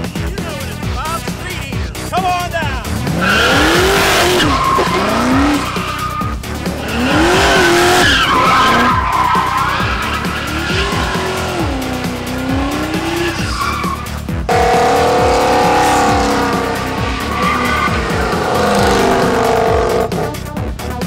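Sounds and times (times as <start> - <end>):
background music: 0.0 - 21.0
car engine revving: 1.3 - 20.9
tyres spinning and squealing: 2.8 - 20.3
car engine at steady high pitch: 2.8 - 20.6.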